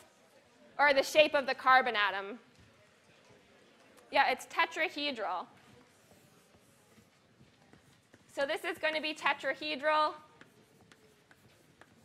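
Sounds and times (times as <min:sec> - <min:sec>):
chalk writing on a blackboard: 0:05.5 - 0:12.0.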